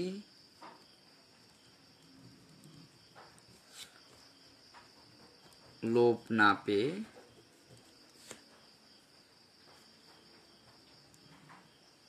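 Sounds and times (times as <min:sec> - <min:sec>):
man talking: 0:00.0 - 0:00.2, 0:05.8 - 0:07.1.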